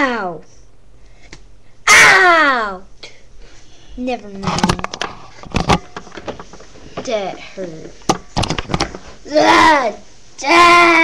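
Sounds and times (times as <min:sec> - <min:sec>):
sharp knocks: 0:08.0 - 0:09.0.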